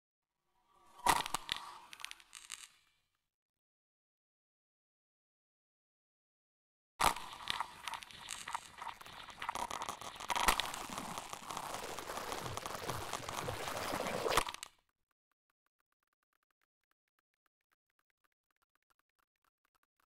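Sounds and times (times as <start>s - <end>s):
crackling electronic noise texture: 7.0s - 14.7s.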